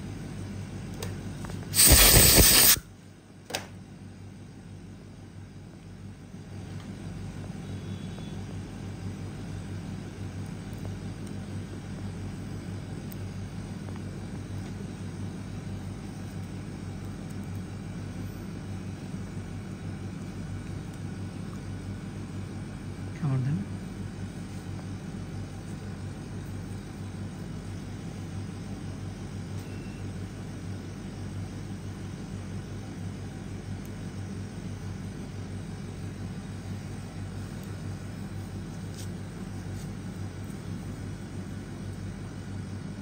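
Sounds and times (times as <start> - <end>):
low hum and rumble: 0.0 - 43.0.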